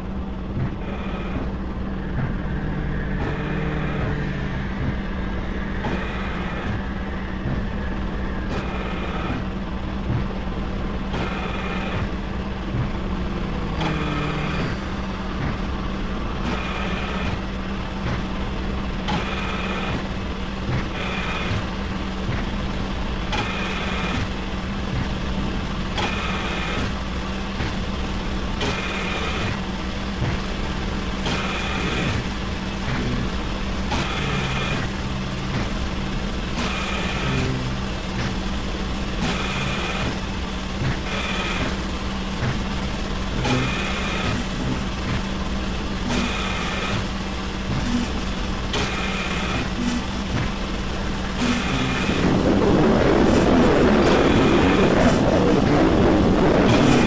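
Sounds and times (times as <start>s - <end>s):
low drone: 0.0s - 27.5s, 28.1s - 57.0s
mechanical pulse: 31.2s - 57.0s
dense noise: 31.4s - 57.0s.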